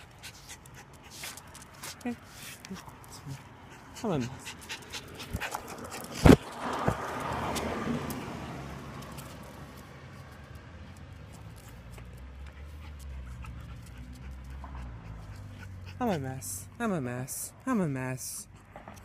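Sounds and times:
dog: 11.6s - 16.2s.

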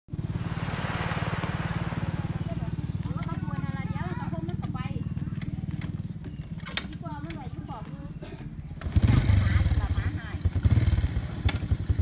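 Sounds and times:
motorcycle engine idling: 0.1s - 12.0s
people's voices: 0.6s - 5.9s.

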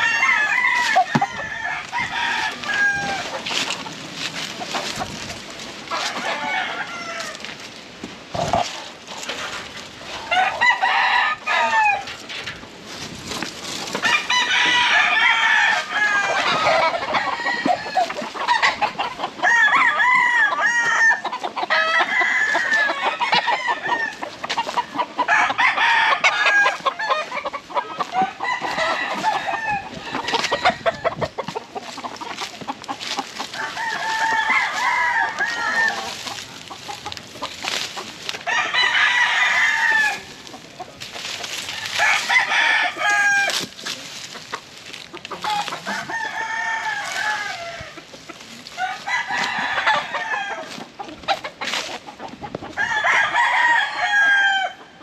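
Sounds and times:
roosters crowing: 0.0s - 55.0s.

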